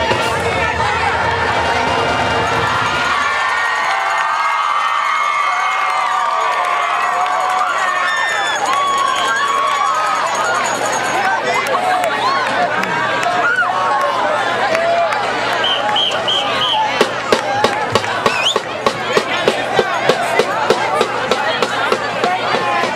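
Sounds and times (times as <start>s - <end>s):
crowd cheering and talking: 0.0s - 22.9s
marching band playing: 16.2s - 22.9s.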